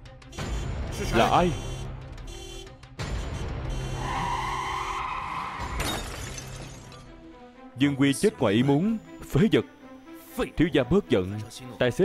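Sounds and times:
dramatic background music: 0.0 - 12.0
tyres screeching: 3.7 - 6.0
car crash with breaking glass: 5.6 - 7.1.

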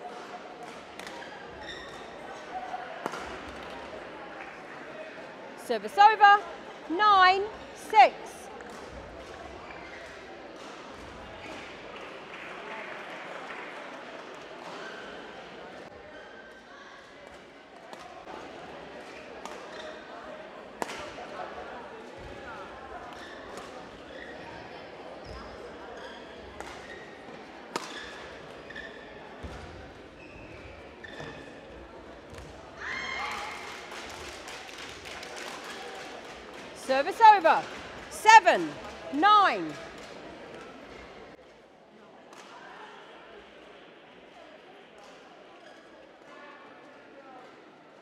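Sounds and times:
faint crowd noise: 0.0 - 48.0
rackets hitting shuttlecock: 27.7 - 28.2.

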